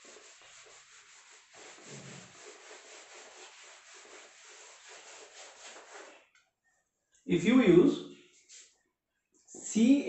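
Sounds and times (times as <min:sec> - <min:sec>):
duster rubbing whiteboard: 0:00.0 - 0:06.3.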